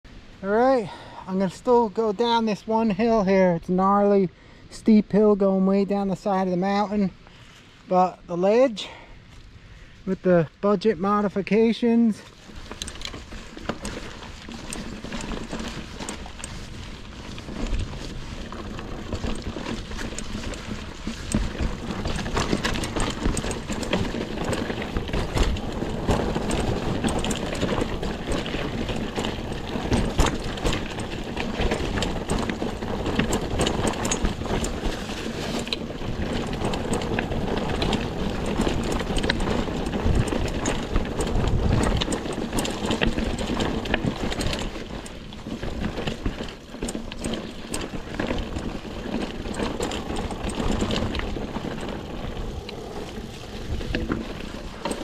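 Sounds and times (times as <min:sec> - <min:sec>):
bike tyres on dirt: 0:00.1 - 0:04.1, 0:04.7 - 0:55.0
bike rattling over bumps: 0:10.6 - 0:55.0.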